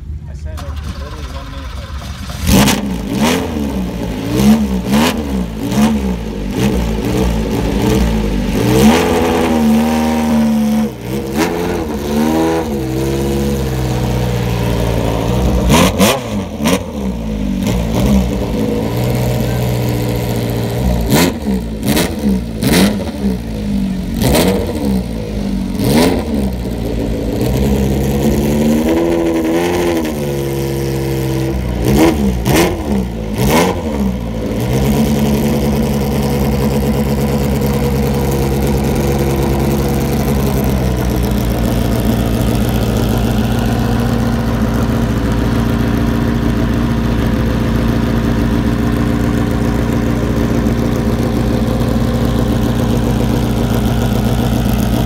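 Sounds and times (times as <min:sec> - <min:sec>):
engine revving over idle: 0:00.6 - 0:55.0.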